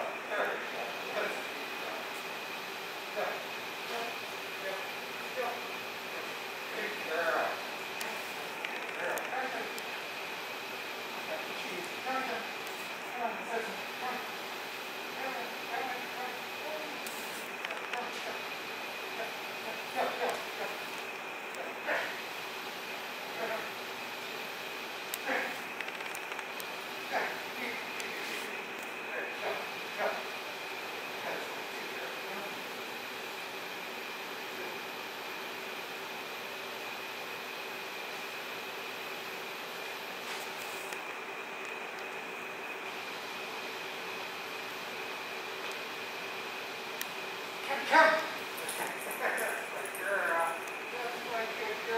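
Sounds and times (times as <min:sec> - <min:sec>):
faint high whine: 0:00.0 - 0:51.9
room hum: 0:00.0 - 0:51.9.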